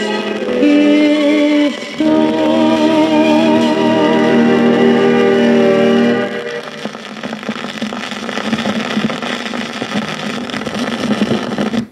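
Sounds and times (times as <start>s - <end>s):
song final chord: 0.0s - 7.0s
low hum: 1.9s - 7.1s
vinyl surface crackle and clicks: 6.3s - 11.9s.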